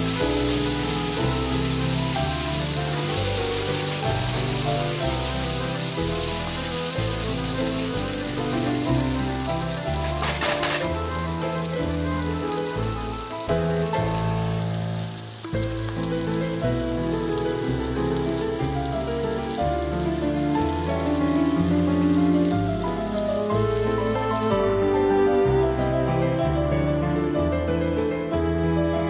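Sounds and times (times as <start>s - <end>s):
food sizzling in oil: 0.0s - 24.6s
background music: 0.0s - 29.0s.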